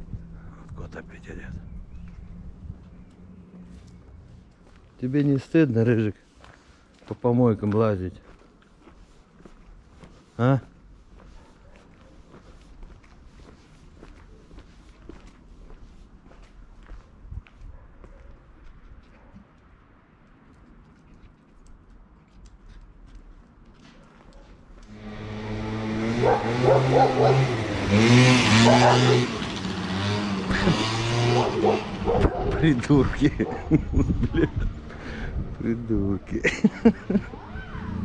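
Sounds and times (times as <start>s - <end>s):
footsteps on pavement: 1.4s - 25.0s
dogs barking: 11.3s - 12.3s, 17.7s - 18.5s, 19.1s - 19.5s, 26.1s - 29.6s, 31.1s - 33.8s.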